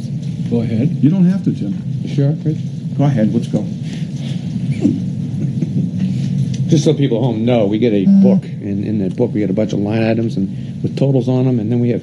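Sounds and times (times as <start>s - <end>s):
murmur of voices: 8.0s - 8.7s.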